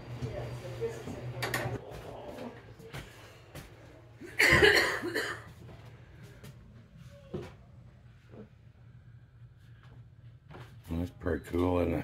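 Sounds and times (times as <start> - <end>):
person coughing: 4.3 - 5.5.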